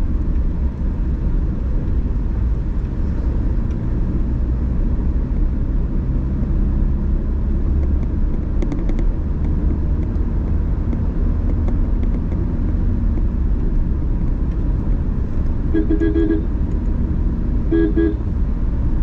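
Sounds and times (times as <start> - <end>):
car driving rumble: 0.0 - 19.0
car horn toots: 15.7 - 16.6, 17.6 - 18.3.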